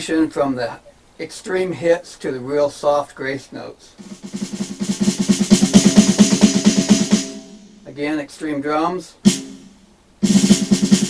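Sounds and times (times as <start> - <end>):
electronic snare drum roll: 4.0 - 8.0, 9.2 - 11.0.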